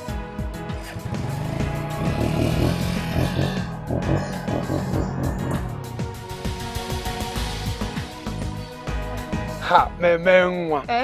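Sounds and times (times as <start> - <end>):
background film music: 0.0 - 11.0
motorcycle engine revving: 0.8 - 7.1.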